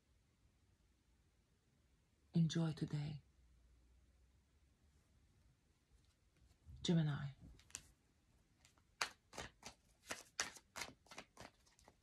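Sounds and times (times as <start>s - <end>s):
woman's voice: 2.4s - 3.2s, 6.8s - 7.4s
tarot cards clicking: 8.6s - 12.0s.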